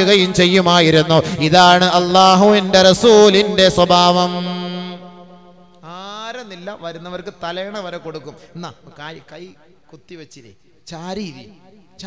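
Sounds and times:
person chanting: 0.0s - 9.3s.

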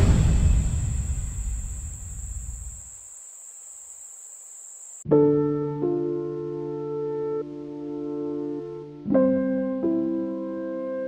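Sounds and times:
low rumble: 0.0s - 2.8s
high-pitched ringing tone: 1.3s - 5.0s.

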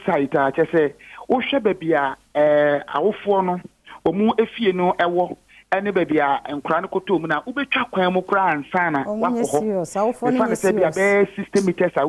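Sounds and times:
person talking over telephone: 8.9s - 12.0s.

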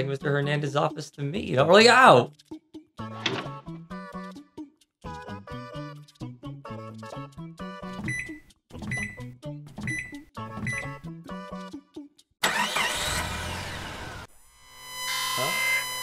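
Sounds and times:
bouncy background music: 0.0s - 12.4s
electronic keypad beeps: 8.0s - 9.2s, 9.8s - 11.0s
steady electronic tone: 14.2s - 16.0s.

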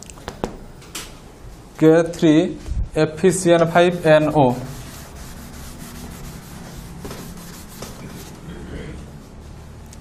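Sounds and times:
duster rubbing a blackboard: 3.7s - 8.5s.

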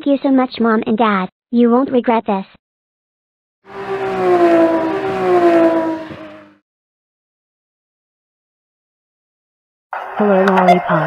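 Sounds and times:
engine-like tone dropping in pitch: 3.7s - 6.6s.

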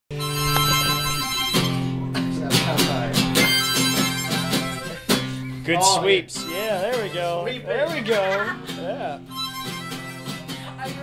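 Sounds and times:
wind instrument playing chords: 0.1s - 2.2s, 2.9s - 8.0s, 9.2s - 10.5s.

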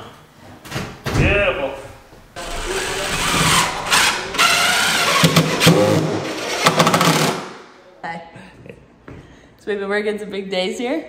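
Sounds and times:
cordless drill driving screw: 2.4s - 7.4s.

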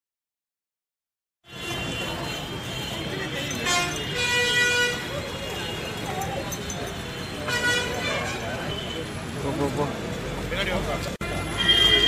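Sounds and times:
vehicle horn honking: 1.4s - 6.0s, 7.2s - 9.1s, 11.2s - 12.0s.

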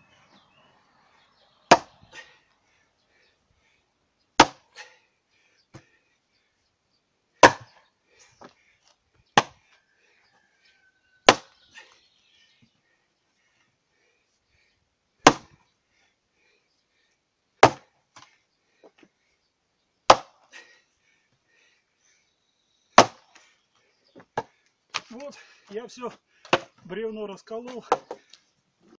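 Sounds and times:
axe chopping log: 1.7s - 2.1s, 4.4s - 4.8s, 7.4s - 7.8s, 9.4s - 9.6s, 11.2s - 11.6s, 15.2s - 15.6s, 17.6s - 17.9s, 20.1s - 20.4s, 23.0s - 23.3s, 26.5s - 26.8s.

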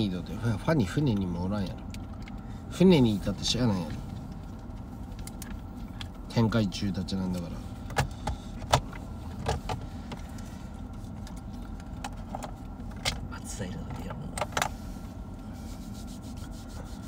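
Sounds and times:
car cabin rumble: 0.0s - 17.0s.

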